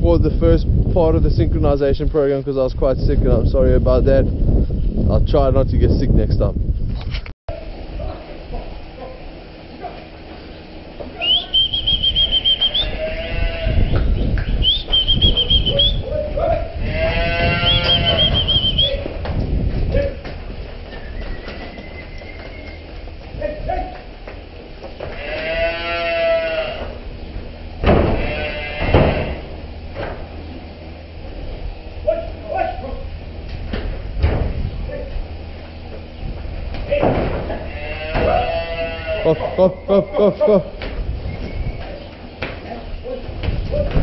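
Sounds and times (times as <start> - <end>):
loud drawn-out calls: 11.1 - 14.0, 15.2 - 19.0, 28.0 - 29.5
high whistles: 11.2 - 13.0, 14.4 - 16.1, 17.7 - 19.0, 20.9 - 22.8, 41.2 - 41.9.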